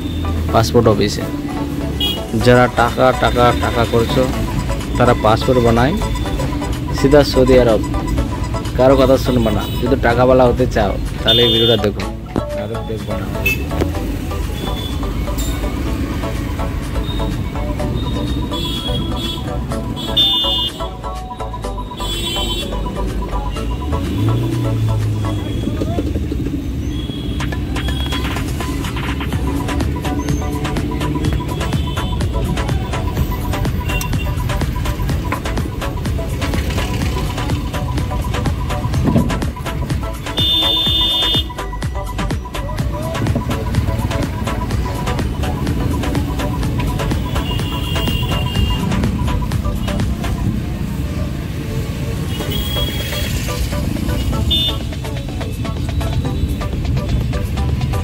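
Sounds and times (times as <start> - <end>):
car engine and road rumble: 0.0 - 58.0
short high horn toots: 40.3 - 41.6.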